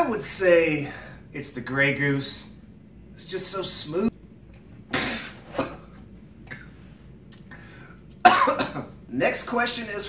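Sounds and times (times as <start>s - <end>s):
man coughing: 4.9s - 6.8s, 8.2s - 9.0s.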